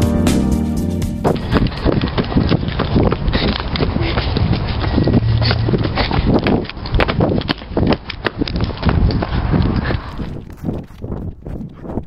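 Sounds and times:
running footsteps on dirt and stone: 1.3s - 12.0s.

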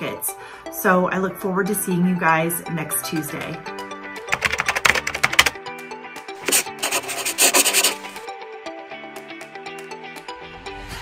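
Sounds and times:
scratchy rubbing sound effect: 6.4s - 8.3s.

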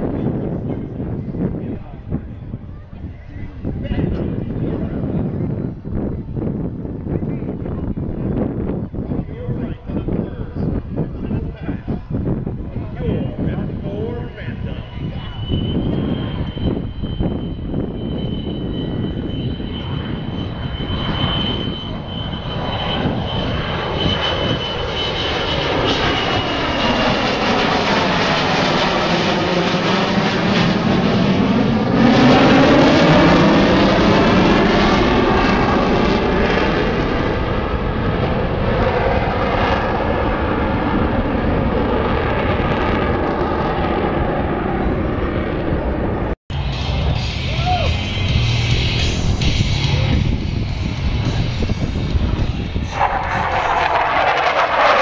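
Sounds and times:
jet fighter passing: 0.0s - 55.0s
thin high jet whine: 0.8s - 55.0s.

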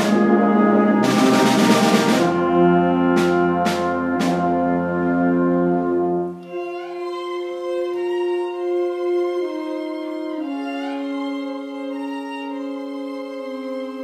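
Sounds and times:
brass ensemble sustained chords: 0.0s - 14.0s.

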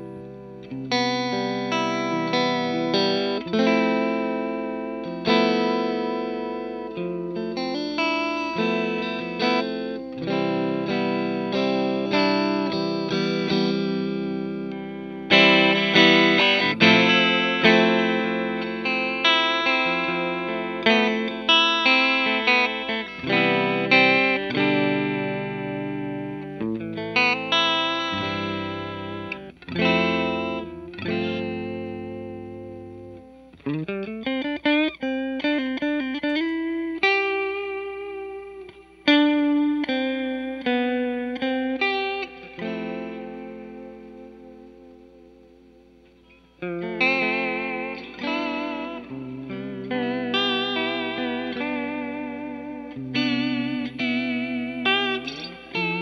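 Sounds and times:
clean electric guitar with vibrato: 0.0s - 56.0s.

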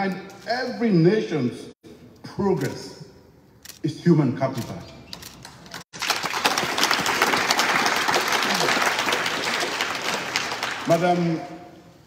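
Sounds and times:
audience applauding: 5.9s - 11.2s.

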